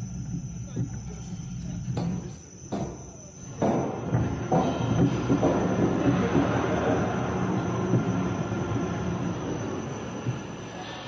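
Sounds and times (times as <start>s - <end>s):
roller coaster knocks: 1.9s - 10.7s
roller coaster rumbling on track: 3.9s - 10.9s.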